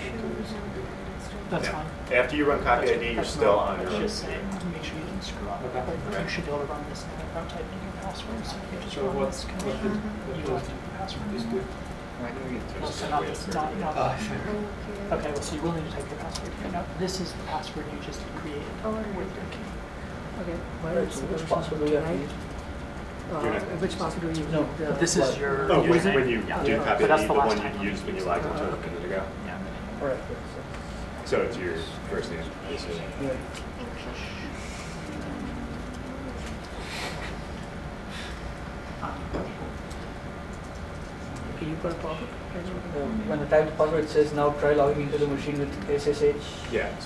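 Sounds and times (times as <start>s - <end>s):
low room hum: 0.0s - 47.0s
people talking quietly: 0.0s - 47.0s.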